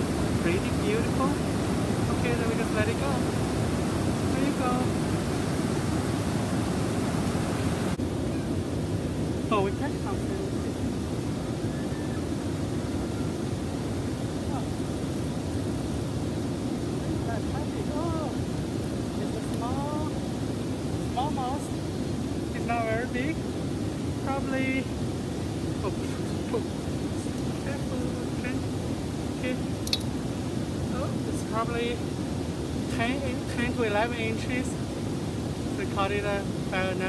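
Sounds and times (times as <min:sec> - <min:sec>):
river rushing over rapids: 0:00.0 - 0:37.0
rising-and-falling pitched calls: 0:11.6 - 0:13.8.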